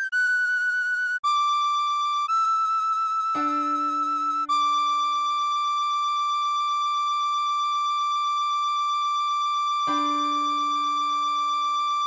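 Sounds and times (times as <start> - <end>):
tin whistle holding high note: 0.0 - 12.0.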